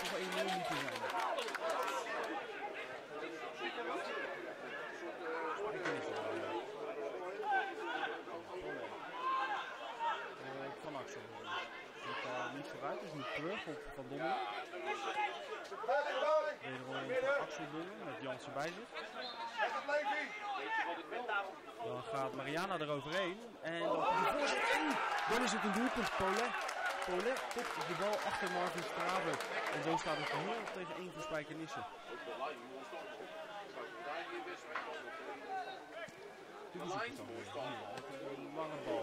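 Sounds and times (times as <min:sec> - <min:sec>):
men's voices: 0:09.6 - 0:39.0
male commentator speaking: 0:19.8 - 0:35.5
man commentating: 0:24.0 - 0:26.5.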